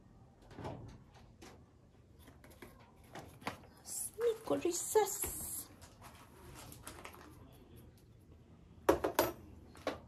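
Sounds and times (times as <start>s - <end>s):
faint handling sounds: 1.2s - 8.5s.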